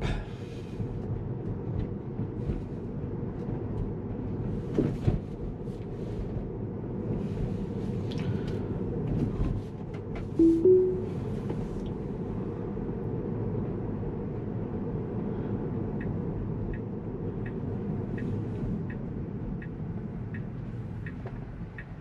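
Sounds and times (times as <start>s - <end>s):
two-note rising chime: 10.4s - 11.2s.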